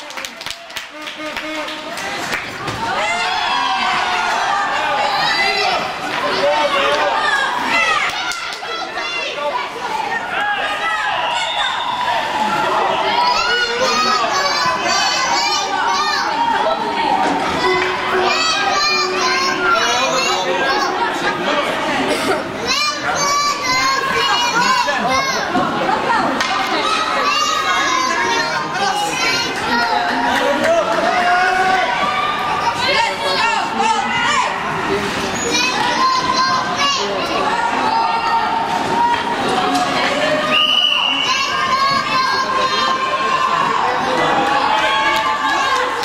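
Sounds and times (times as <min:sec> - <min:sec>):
children shouting in echoing rink: 0:00.7 - 0:46.0.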